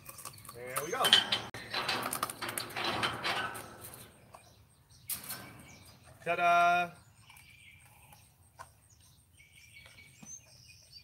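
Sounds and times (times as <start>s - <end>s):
chain-link gate rattling and clanking: 0.6s - 6.2s.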